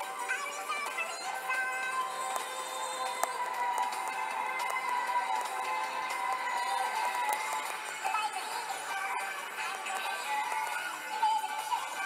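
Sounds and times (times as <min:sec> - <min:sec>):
music on a car radio: 0:00.0 - 0:12.0.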